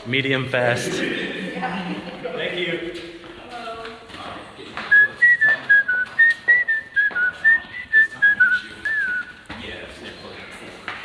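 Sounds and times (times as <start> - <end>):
person whistling a quick tune: 4.9 - 9.4.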